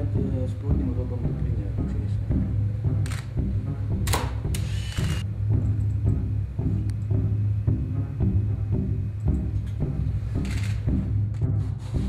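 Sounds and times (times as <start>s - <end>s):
background music: 0.0s - 12.0s
camera shutter click: 3.0s - 3.3s, 4.1s - 5.2s, 10.4s - 10.9s
camera whirring: 3.0s - 3.4s, 4.0s - 5.2s, 10.3s - 11.0s.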